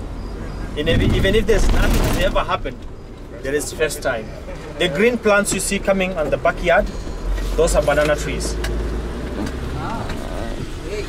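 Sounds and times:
minibus engine rumble: 0.0 - 11.0
road noise: 0.0 - 11.0.

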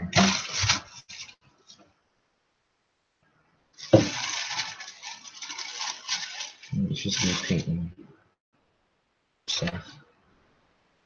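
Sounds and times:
irregular rustling: 3.8 - 7.7.

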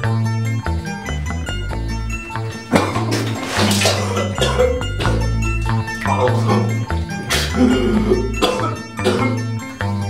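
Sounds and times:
background music with bass line: 0.0 - 10.0
person vomiting into toilet: 2.5 - 9.6.

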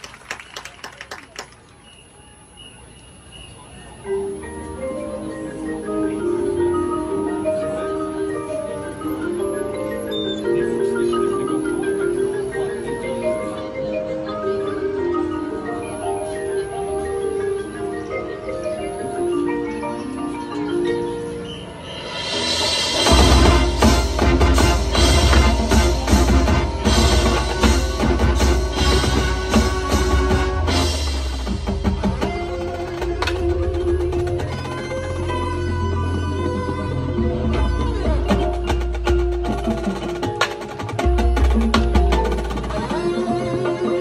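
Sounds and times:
mallet keyboards playing: 3.9 - 44.0
marching band with brass and drums: 21.5 - 44.0.

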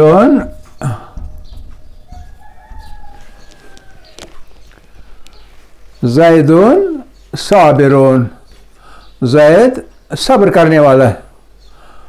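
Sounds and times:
rooster crowing: 1.9 - 4.6.

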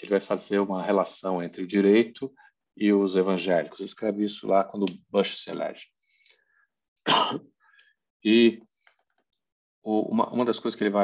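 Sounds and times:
person clearing throat: 7.1 - 7.5.

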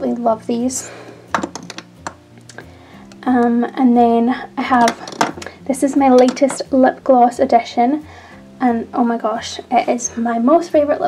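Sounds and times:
plastic tube clicking against organizer: 1.4 - 2.2, 4.8 - 5.5.

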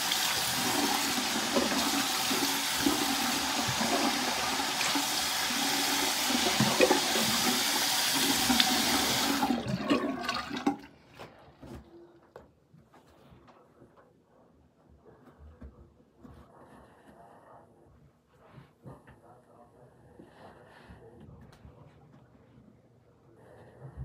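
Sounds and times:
faucet running into sink: 0.0 - 10.8.

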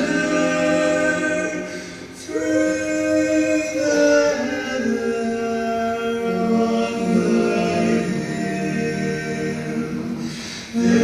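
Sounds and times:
male quartet singing a cappella: 0.0 - 11.0.

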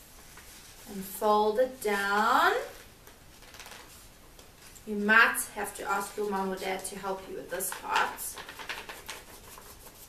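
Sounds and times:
paper rustling and folding: 0.1 - 0.9, 2.6 - 4.8, 7.6 - 10.0.

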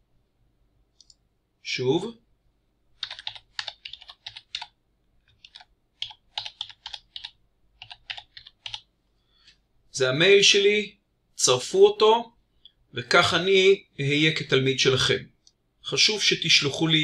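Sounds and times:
typing on computer keyboard: 3.0 - 8.9.

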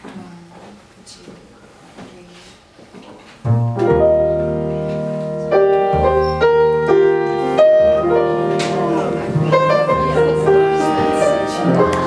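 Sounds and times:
plucked double bass: 3.4 - 7.0
jazz piano chords: 3.4 - 12.0.

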